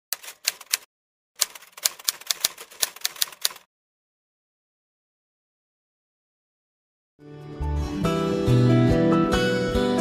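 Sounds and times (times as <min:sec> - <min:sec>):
typewriter keys clacking: 0:00.1 - 0:03.7.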